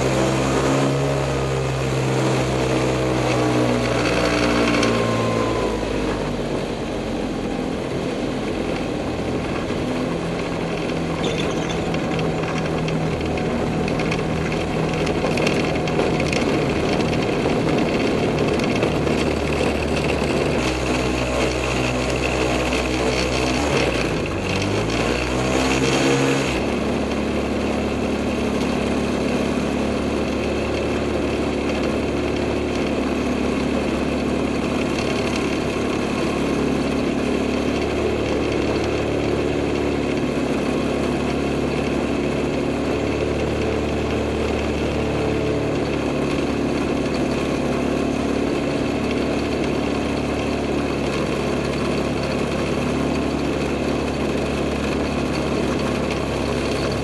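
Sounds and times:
two-stroke aircraft engine idling: 0.0s - 57.0s.

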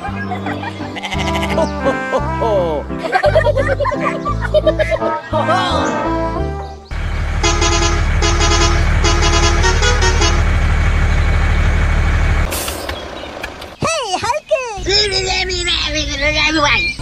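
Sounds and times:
truck engine running: 6.9s - 13.8s
horn honks: 7.3s - 10.7s
short hiss: 12.5s - 13.0s.

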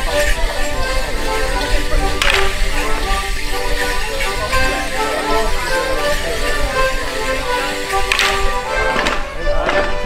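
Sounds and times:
sharp clatter: 0.0s - 4.8s, 7.9s - 9.2s
folk dance tune: 0.0s - 10.0s.

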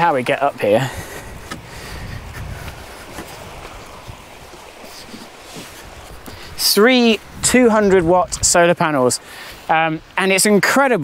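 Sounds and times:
wind buffeting microphone: 0.0s - 10.2s.

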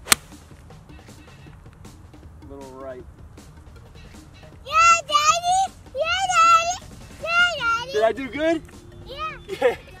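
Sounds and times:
golf club striking ball: 0.0s - 0.4s
faint background music: 0.0s - 10.0s.

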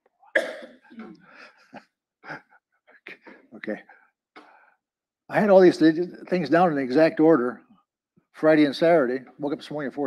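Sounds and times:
throat clearing: 0.4s - 1.5s
man coughing: 0.4s - 1.6s.

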